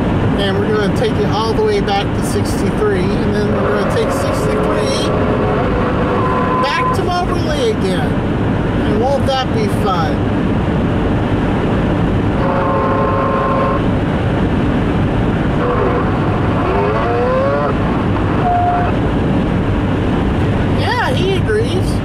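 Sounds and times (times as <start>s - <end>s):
road and tyre noise: 0.0s - 22.0s.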